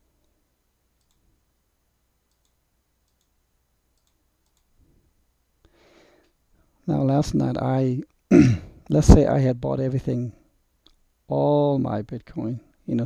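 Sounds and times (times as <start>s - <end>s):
computer mouse clicks: 1.0s - 1.3s, 2.3s - 4.8s.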